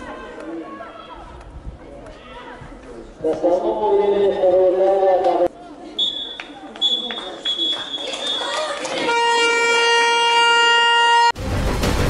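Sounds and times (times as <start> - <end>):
air horn blast: 9.0 - 11.6.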